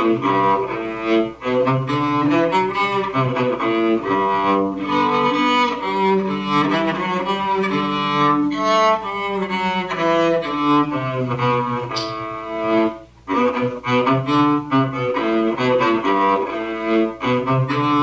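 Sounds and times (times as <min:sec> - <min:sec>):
cellos playing: 0:00.0 - 0:18.0.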